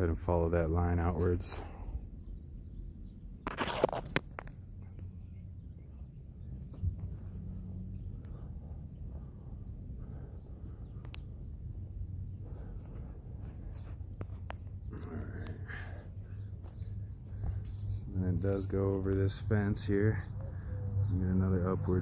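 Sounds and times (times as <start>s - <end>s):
steady low hum: 0.0s - 21.5s.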